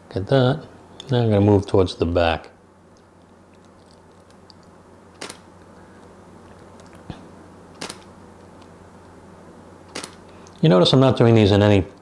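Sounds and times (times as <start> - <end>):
faint steady low hum: 0.0 - 12.0
camera shutter clicking: 5.2 - 5.4, 7.8 - 8.1, 9.9 - 10.2.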